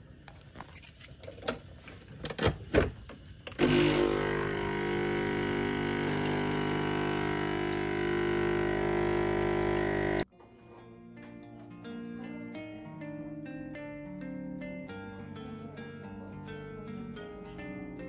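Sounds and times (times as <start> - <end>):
espresso pump buzzing hum: 3.6 - 10.3
soft plucked music: 10.3 - 18.0.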